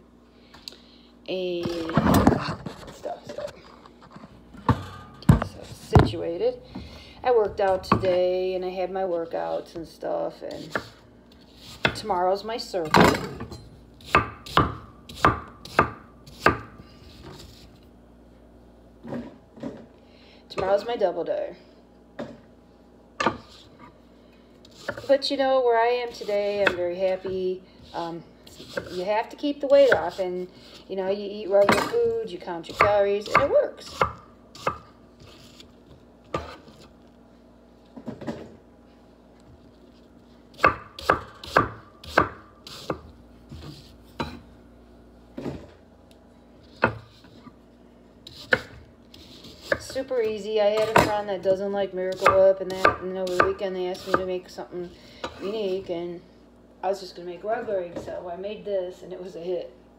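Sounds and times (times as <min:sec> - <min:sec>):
knife chopping on wooden board: 0:14.0 - 0:16.7, 0:32.7 - 0:34.9, 0:40.6 - 0:44.4, 0:46.8 - 0:47.1, 0:48.3 - 0:50.0.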